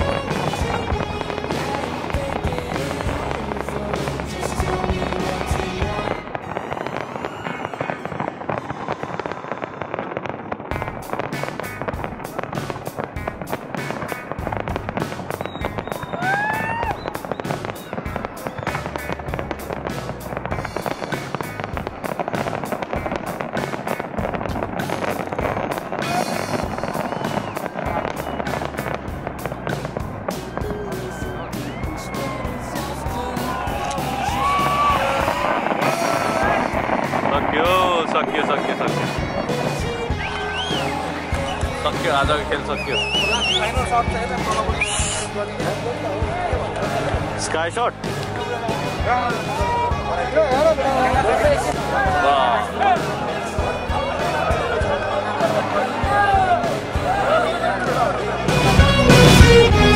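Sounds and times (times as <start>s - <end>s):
fireworks crackling and banging: 0.0s - 59.9s
music playing: 0.0s - 59.9s.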